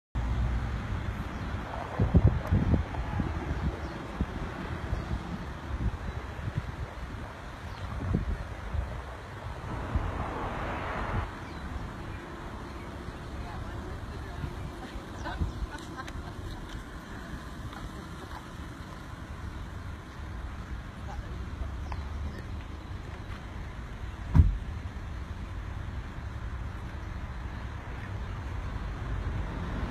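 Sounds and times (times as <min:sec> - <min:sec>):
wind buffeting microphone: 0:01.3 - 0:20.4.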